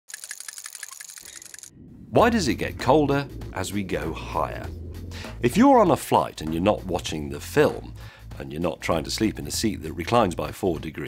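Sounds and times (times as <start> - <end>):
rapid mechanical clicking: 0.1 - 1.7
low hum: 0.9 - 8.2.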